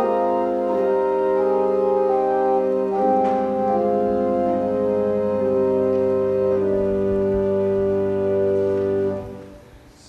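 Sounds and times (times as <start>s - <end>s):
church organ chords: 0.0s - 9.9s.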